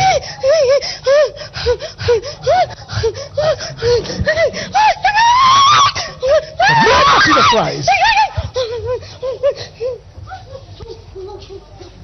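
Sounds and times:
woman sobbing: 0.0 - 11.9.

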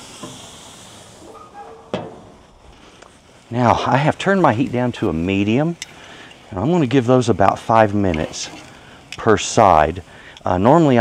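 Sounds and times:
patties sizzling on a grill: 0.0 - 11.0.

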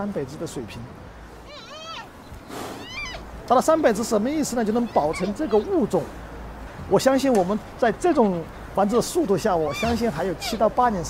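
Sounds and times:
panda cubs bleating and squealing: 1.4 - 2.2, 2.8 - 3.3, 4.5 - 6.0, 7.9 - 10.8.

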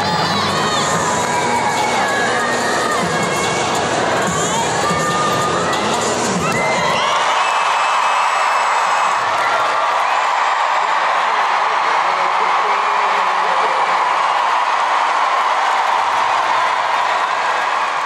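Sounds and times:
crowd cheering and applauding: 0.0 - 18.0.

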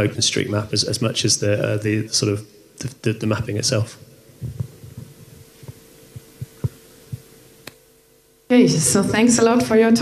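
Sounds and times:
steady hum: 0.0 - 10.0
microphone handling thumps: 4.3 - 7.4.

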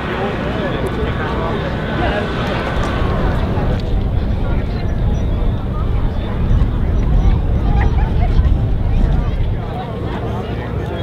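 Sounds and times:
crowd chatter: 0.0 - 11.0
steady low rumble: 0.0 - 11.0.

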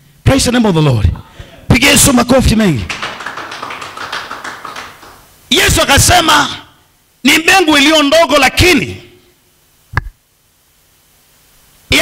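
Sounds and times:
applause: 2.8 - 5.3.

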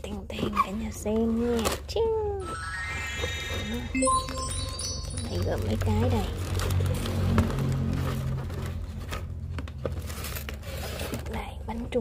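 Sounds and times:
cardboard and wrappers rustling: 7.2 - 11.4.

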